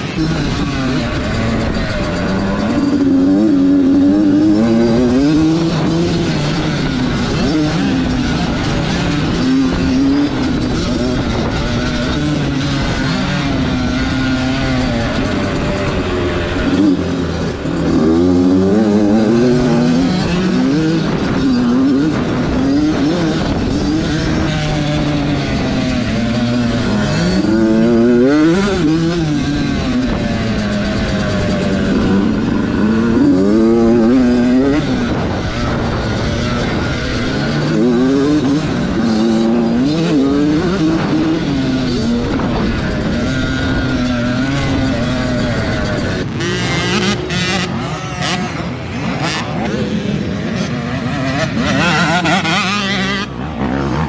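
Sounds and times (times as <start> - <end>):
dirt bike engine revving: 0.0 - 54.0
other dirt bikes riding nearby: 0.0 - 54.0.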